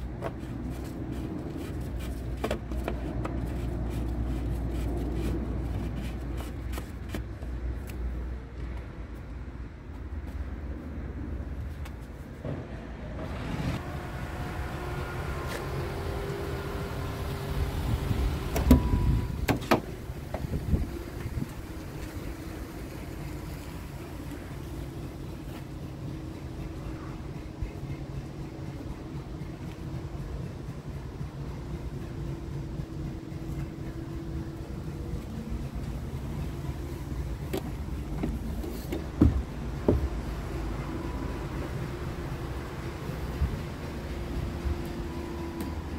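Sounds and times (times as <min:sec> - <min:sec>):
steady low rumble: 0:00.0 - 0:45.9
diesel truck engine idling: 0:13.8 - 0:45.9
short knocks and bumps: 0:37.5 - 0:40.2.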